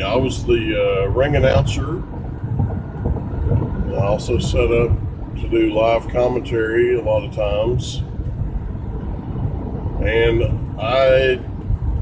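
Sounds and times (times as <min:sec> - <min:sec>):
car cabin road and engine rumble: 0:00.0 - 0:12.0.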